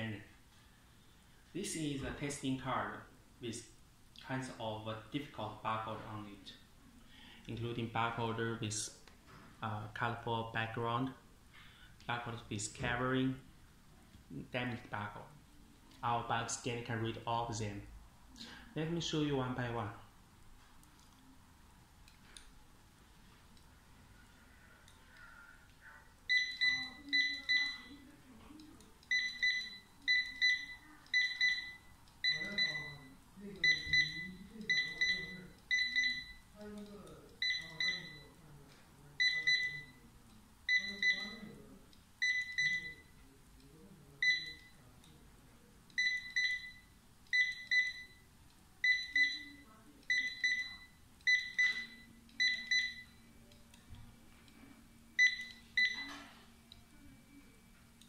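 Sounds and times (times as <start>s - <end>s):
barcode scanner double beeps: 26.3s - 28.0s, 29.1s - 36.4s, 37.4s - 38.2s, 39.2s - 40.0s, 40.7s - 41.5s, 42.2s - 43.1s, 44.2s - 44.8s, 46.0s - 48.2s, 48.8s - 53.2s, 55.2s - 56.1s.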